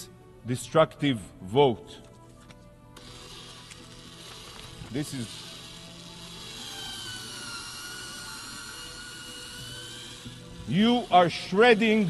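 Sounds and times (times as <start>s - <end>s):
electric paper shredder whining: 3.0s - 12.0s.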